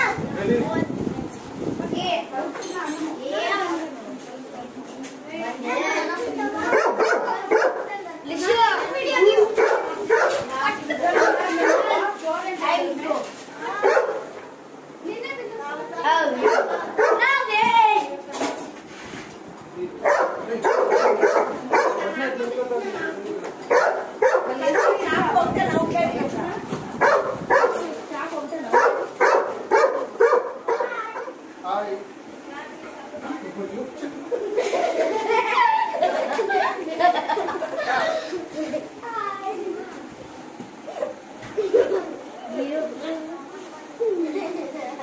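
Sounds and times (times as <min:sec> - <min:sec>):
children calling and chattering: 0:00.0 - 0:45.0
dog barking: 0:06.7 - 0:07.9, 0:09.4 - 0:10.5, 0:11.1 - 0:12.0, 0:13.8 - 0:14.3, 0:16.4 - 0:17.3, 0:20.0 - 0:22.1, 0:23.7 - 0:25.1, 0:27.0 - 0:27.9, 0:28.7 - 0:31.4.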